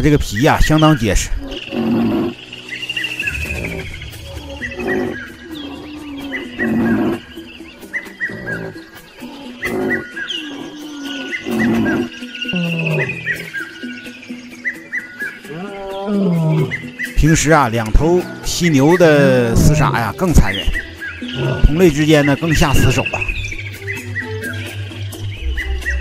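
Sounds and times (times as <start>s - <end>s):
background music: 0.0s - 26.0s
lions growling: 1.3s - 2.4s, 3.1s - 13.6s, 15.5s - 17.0s, 21.2s - 22.9s.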